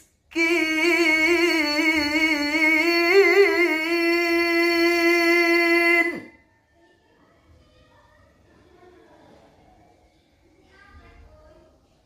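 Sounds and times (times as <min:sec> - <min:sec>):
man reciting melodically: 0:00.3 - 0:06.4.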